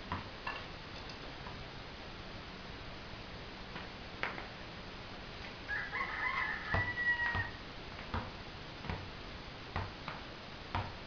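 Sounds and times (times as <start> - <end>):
basketball bouncing on concrete: 0.0 - 0.3, 6.2 - 9.1, 9.7 - 11.0
rooster crowing: 5.7 - 7.6.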